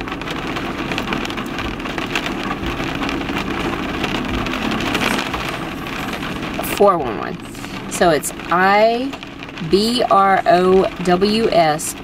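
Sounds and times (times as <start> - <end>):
low hum: 0.0 - 12.0
rain pattering on car roof: 0.0 - 12.0.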